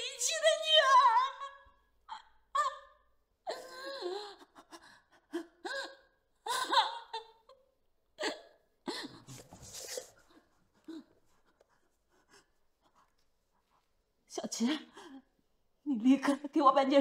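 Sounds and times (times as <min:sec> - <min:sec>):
woman sobbing and gasping: 0:00.7 - 0:09.4, 0:14.5 - 0:16.6.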